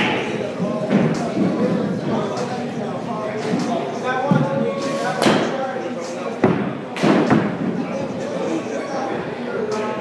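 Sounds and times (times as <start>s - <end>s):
background voices in a hall: 0.0s - 10.0s.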